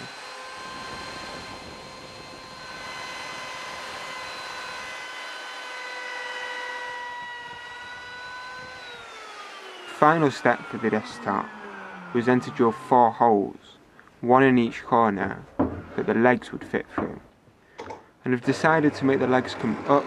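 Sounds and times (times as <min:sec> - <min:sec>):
router bit rasping through wood: 0:00.0 - 0:13.7, 0:18.3 - 0:20.0
router motor whine: 0:00.0 - 0:13.8, 0:18.4 - 0:20.0.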